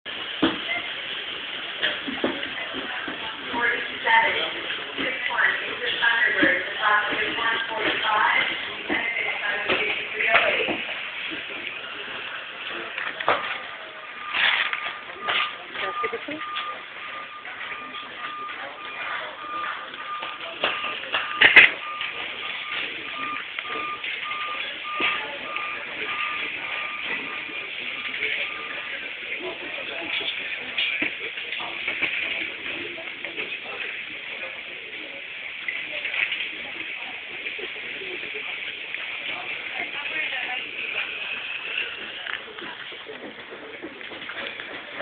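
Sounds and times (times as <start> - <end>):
murmur of people: 0.1 - 45.0
electronic beeps: 14.0 - 29.0.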